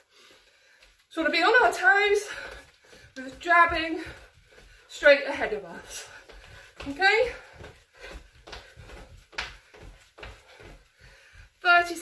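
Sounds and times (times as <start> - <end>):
feet thumping on laminate floor: 0.8 - 12.0.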